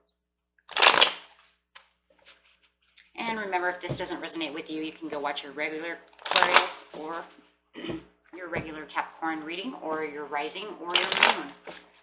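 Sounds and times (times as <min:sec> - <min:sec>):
cards riffle shuffled: 0:00.7 - 0:02.8.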